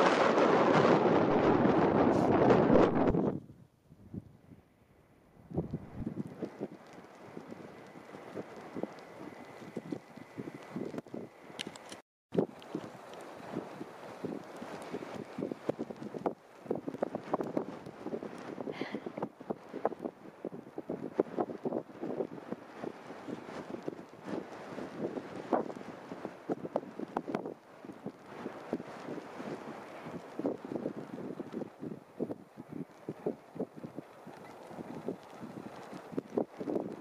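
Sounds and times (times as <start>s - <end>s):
wind buffeting microphone: 0.0s - 4.7s, 5.3s - 37.0s.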